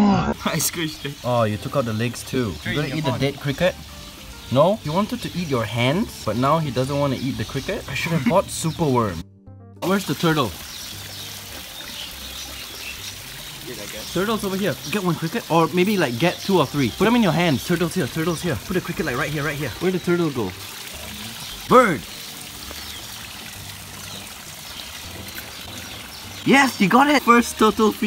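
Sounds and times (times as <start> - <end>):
waterfall splashing into pond: 0.0 - 9.2, 9.8 - 28.0.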